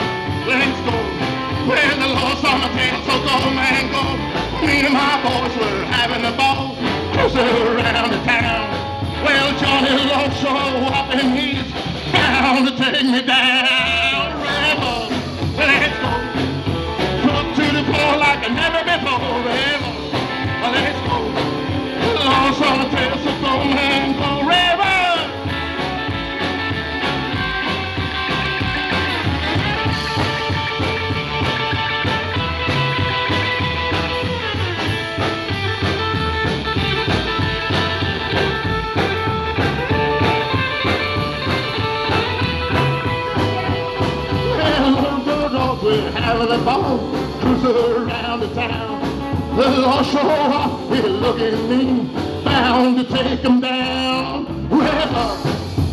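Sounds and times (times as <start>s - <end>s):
person singing: 0.0s - 25.4s, 41.9s - 55.6s
acoustic and electric guitars: 0.0s - 55.9s
drums: 0.0s - 55.9s
rockabilly band playing: 0.0s - 55.9s
upright double bass: 0.0s - 55.9s.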